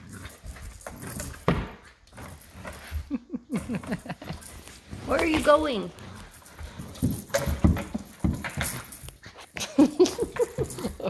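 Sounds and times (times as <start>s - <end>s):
puppy paws on hardwood floor: 0.0s - 11.0s.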